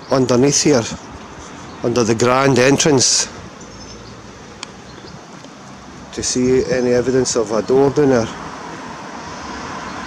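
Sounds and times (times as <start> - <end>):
low street background noise: 0.0 - 10.0.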